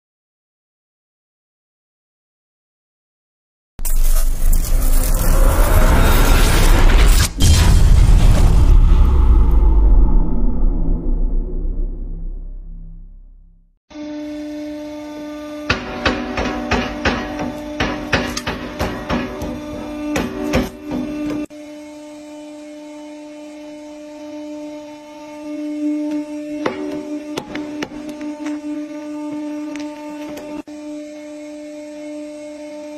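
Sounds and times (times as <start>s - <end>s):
heavy low rumble: 4.2s - 13.7s
hydraulic press humming: 14.6s - 21.5s, 25.4s - 30.8s.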